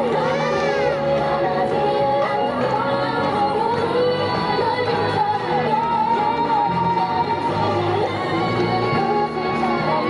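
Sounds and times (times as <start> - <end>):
pop song with female vocal: 0.0 - 10.0.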